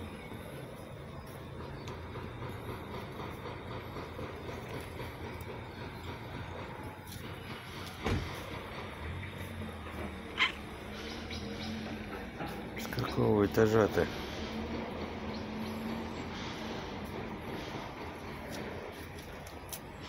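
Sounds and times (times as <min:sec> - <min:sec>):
thump: 0:08.0 - 0:08.4.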